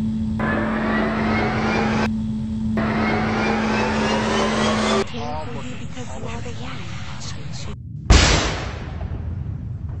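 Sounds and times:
steady low rumble: 0.0s - 10.0s
pistol gunshot: 8.1s - 9.1s.

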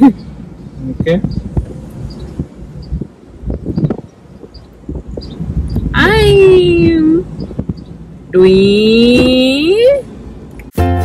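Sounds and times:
convertible soft top rumbling: 0.0s - 10.8s
knocks and clunks: 9.0s - 9.6s.

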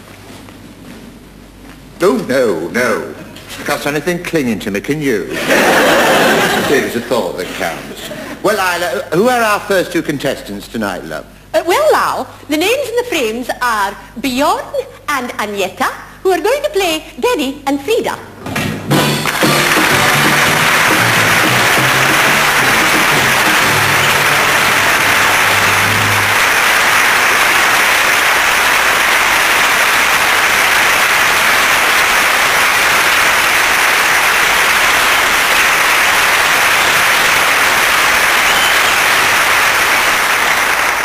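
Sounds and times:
audience applauding: 5.4s - 7.8s, 18.9s - 41.0s
low musical notes: 18.9s - 26.6s.

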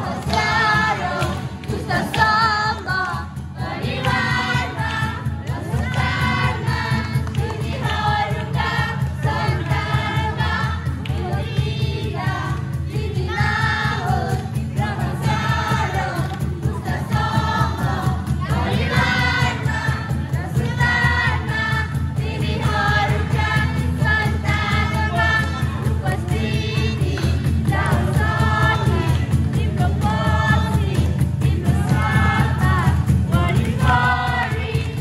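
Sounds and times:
group singing a church song: 0.0s - 35.0s
instrumental accompaniment with beat: 0.0s - 35.0s.

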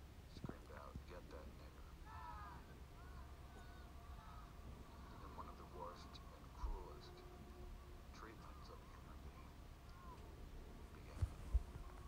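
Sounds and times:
steady low hum: 0.0s - 12.0s
faint speech: 0.3s - 12.0s.

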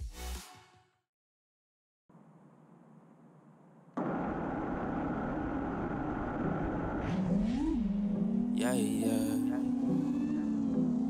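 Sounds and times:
drone motors whining: 4.0s - 11.0s.

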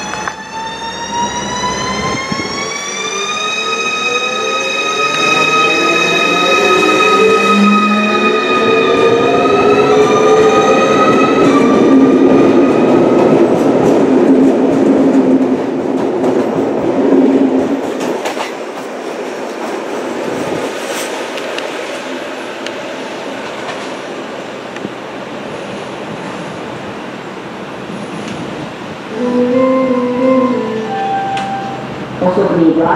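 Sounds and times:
train traction electrics whining: 0.0s - 14.0s, 27.4s - 32.6s
train wheels rumbling on rails: 0.0s - 29.1s.

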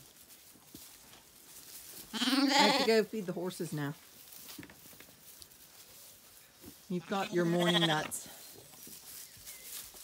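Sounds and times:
lambs rustling on straw: 0.0s - 10.0s.

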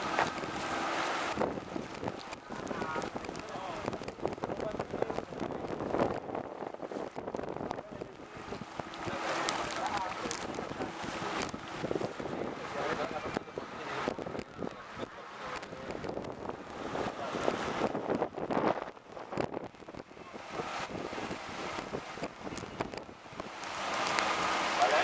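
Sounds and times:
motorboat: 0.0s - 25.0s
wind buffeting microphone: 0.0s - 25.0s
faint indistinct voices: 7.7s - 18.2s, 20.0s - 21.4s.

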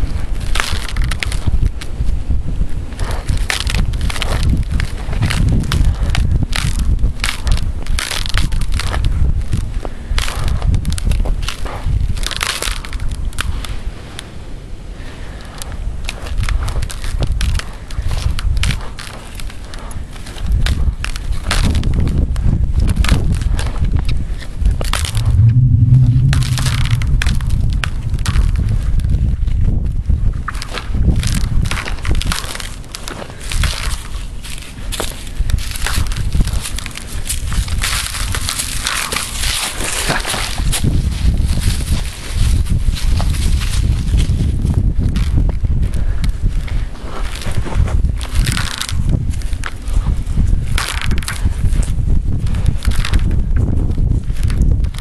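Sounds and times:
ice cracking under boots: 0.4s - 1.5s, 3.1s - 9.6s, 10.2s - 13.5s, 16.0s - 22.2s, 30.5s - 40.9s, 46.7s - 50.0s, 52.5s - 53.3s.

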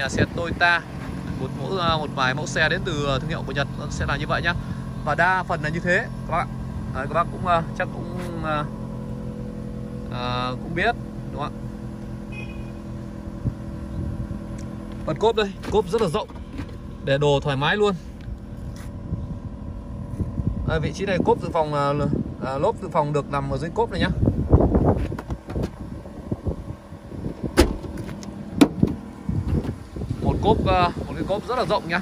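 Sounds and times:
car engine idling: 0.0s - 32.0s
car trunk shutting: 15.0s - 16.9s, 24.9s - 25.9s, 27.2s - 29.9s
soft thump: 27.5s - 29.8s.

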